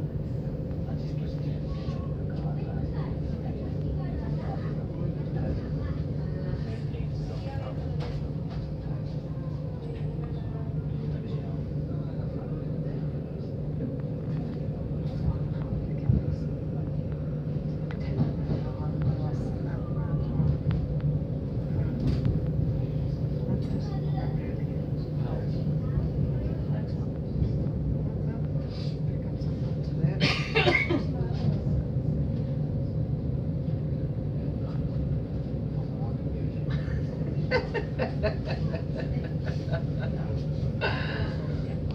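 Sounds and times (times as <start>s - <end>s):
train interior low hum: 0.0s - 41.9s.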